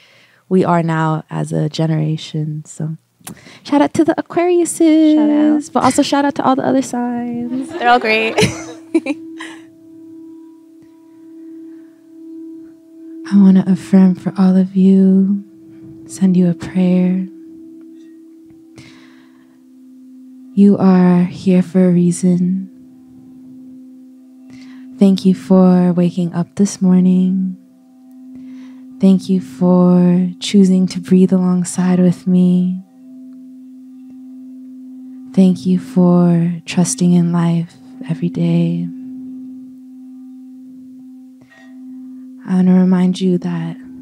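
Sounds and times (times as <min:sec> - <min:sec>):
soft breath: 0:00.0 - 0:00.5, 0:18.8 - 0:19.6, 0:28.3 - 0:29.0, 0:41.4 - 0:41.9
singing bowls ringing: 0:03.4 - 0:44.0.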